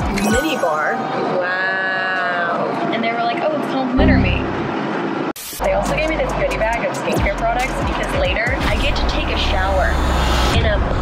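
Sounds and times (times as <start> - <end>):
woman speaking excitedly: 0.3 - 4.5, 5.7 - 9.9, 10.6 - 11.0
airliner cabin drone: 4.0 - 5.2.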